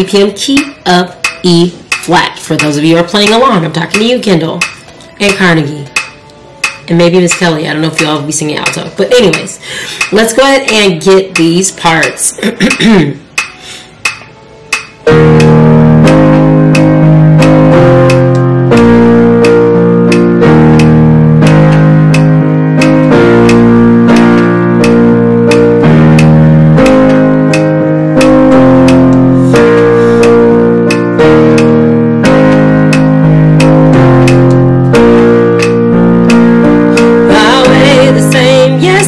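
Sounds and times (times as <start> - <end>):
person singing: 37.0 - 39.0.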